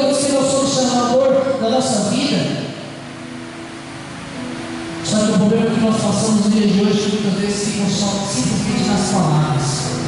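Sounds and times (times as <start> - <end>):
room and sound system hiss: 0.0 - 10.0.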